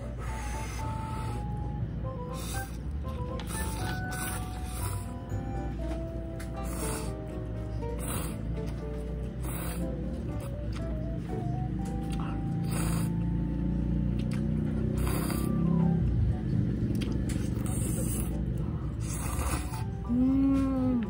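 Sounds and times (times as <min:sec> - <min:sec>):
background music stepping melody: 0:00.0 - 0:17.6
noodles being slurped: 0:02.3 - 0:05.2, 0:14.2 - 0:15.8, 0:17.3 - 0:20.0.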